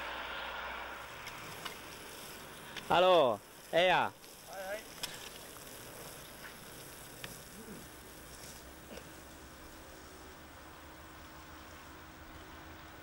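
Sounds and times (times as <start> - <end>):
faint steady hiss: 0.0 - 13.0.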